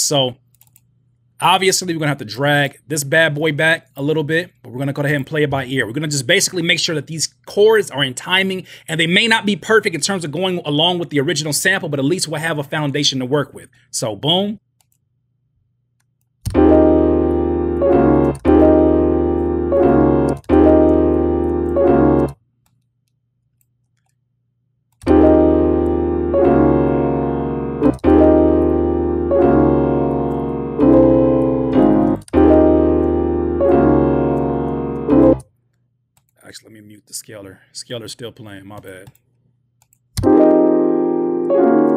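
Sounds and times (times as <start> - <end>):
plugin chords: 16.5 - 22.4, 25.0 - 35.4, 40.2 - 41.9
software piano chords: 16.5 - 22.4, 25.0 - 35.4, 40.2 - 41.9.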